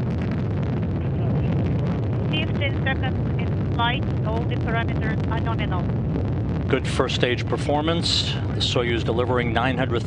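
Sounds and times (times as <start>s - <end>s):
rocket engine rumble: 0.0s - 10.0s.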